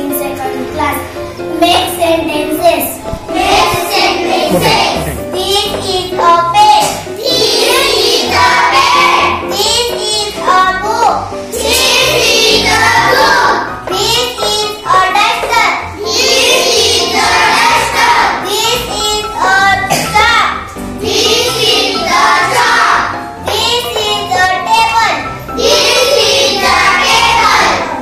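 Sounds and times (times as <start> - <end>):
girl chanting: 4.5 - 5.2.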